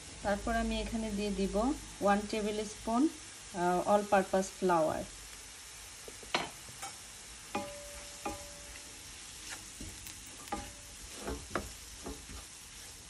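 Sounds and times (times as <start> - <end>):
vegetables sizzling in a pan: 0.0 - 13.0
spatula knocking and scraping pan: 6.3 - 8.8, 9.7 - 12.6.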